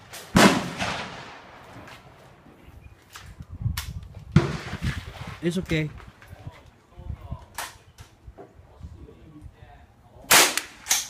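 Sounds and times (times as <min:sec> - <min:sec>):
gunshots: 0:00.0 - 0:01.6, 0:10.3 - 0:11.0.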